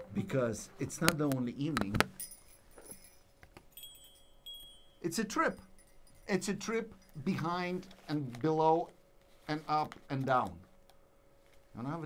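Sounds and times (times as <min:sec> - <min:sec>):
thin high ringing tone: 0:02.2 - 0:07.5
faint metallic jingling: 0:02.2 - 0:07.8.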